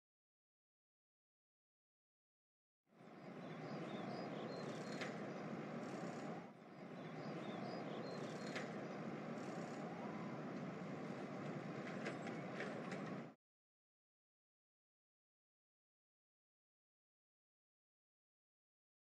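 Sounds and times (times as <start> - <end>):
faint high chirps: 3.0 - 10.4
distant traffic rumble: 3.0 - 13.4.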